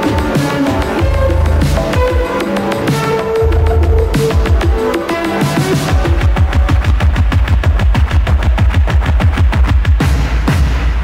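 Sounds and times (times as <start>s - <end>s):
heavy sustained bass: 1.0s - 2.2s, 3.2s - 4.9s.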